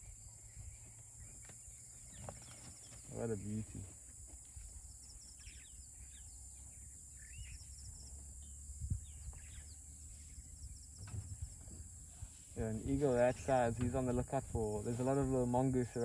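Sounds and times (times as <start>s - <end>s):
faint bird chirps: 0.0s - 14.3s
low background rumble: 4.8s - 16.0s.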